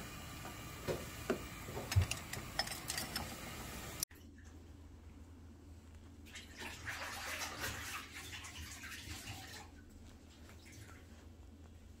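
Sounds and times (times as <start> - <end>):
low steady hum: 0.0 - 7.0, 9.5 - 12.0
water running: 6.2 - 11.3.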